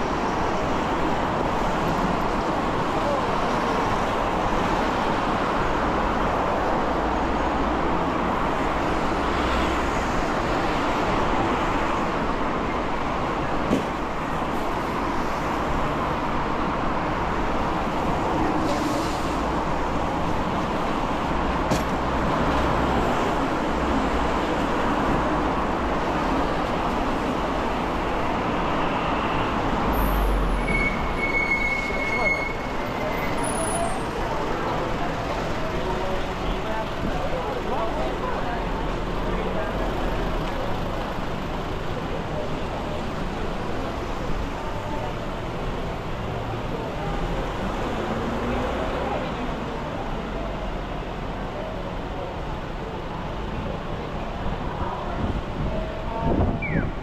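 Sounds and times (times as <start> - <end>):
traffic passing: 0.0 - 57.0
short high-pitched squeal: 30.0 - 34.0.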